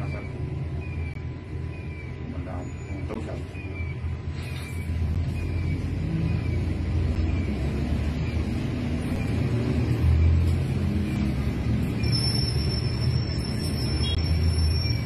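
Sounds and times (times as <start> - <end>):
vehicle engine rumble: 0.0 - 15.0
high falling chirp: 11.0 - 15.0.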